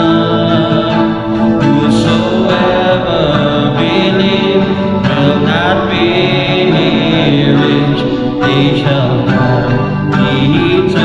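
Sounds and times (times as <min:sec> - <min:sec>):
acoustic guitar: 0:00.0 - 0:11.0
keyboard: 0:00.0 - 0:11.0
man singing: 0:00.0 - 0:11.0.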